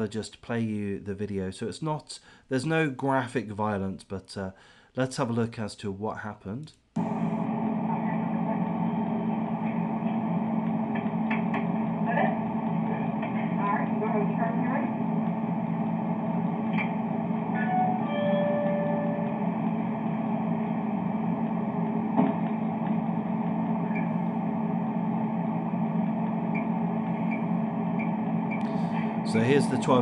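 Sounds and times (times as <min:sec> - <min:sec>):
store hum and hiss: 0:06.6 - 0:30.0.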